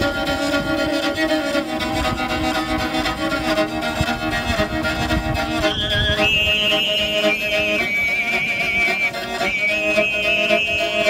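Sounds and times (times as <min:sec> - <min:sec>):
bowed fiddle: 0:00.0 - 0:11.0
throat singing: 0:05.8 - 0:11.0.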